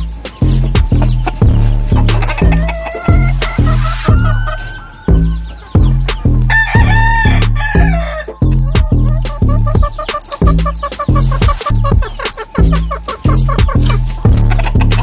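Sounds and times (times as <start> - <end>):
hip hop music with heavy bass: 0.0 - 15.0
rooster crowing: 6.5 - 8.4.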